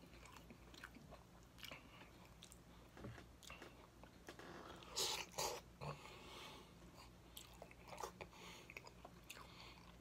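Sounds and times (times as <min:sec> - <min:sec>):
quiet chewing: 0:00.0 - 0:06.2, 0:06.8 - 0:10.0.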